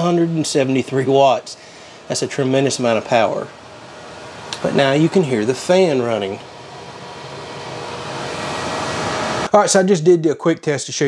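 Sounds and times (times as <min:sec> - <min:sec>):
cooling fan running: 0:00.0 - 0:10.0.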